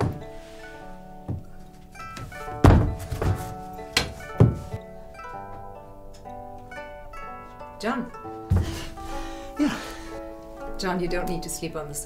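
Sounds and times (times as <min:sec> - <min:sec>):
sofa bed thudding and knocking: 0:00.0 - 0:00.5, 0:01.2 - 0:01.5, 0:02.1 - 0:04.8, 0:08.4 - 0:09.0
soft background music: 0:00.0 - 0:12.0.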